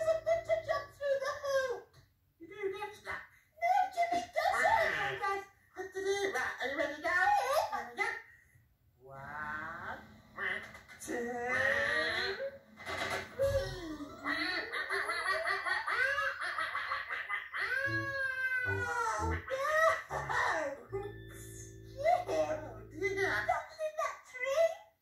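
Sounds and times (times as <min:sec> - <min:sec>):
puppet characters babbling: 0:00.0 - 0:01.8, 0:02.6 - 0:08.1, 0:13.2 - 0:24.8
children's tv music: 0:00.0 - 0:08.2, 0:09.1 - 0:25.0.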